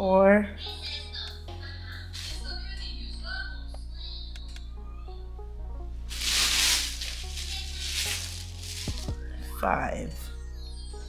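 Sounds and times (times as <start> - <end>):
music: 0.0 - 11.0
plastic shopping bag rustling: 2.2 - 2.6, 6.1 - 9.2.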